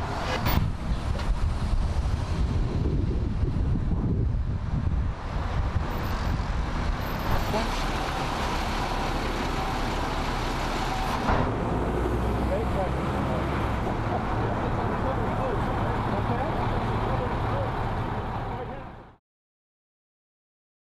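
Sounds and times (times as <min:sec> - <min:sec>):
traffic noise: 0:00.0 - 0:19.2.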